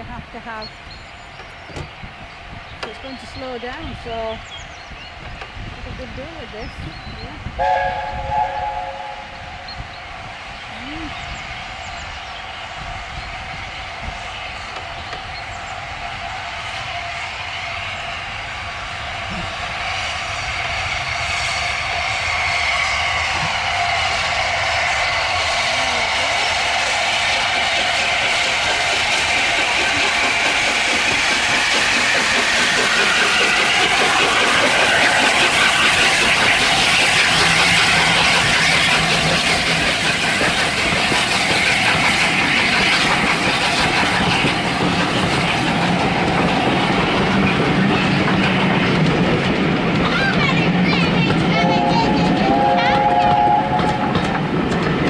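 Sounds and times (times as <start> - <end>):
steam locomotive passing: 0.0 - 55.0
train wheels clattering on rails: 0.4 - 55.0.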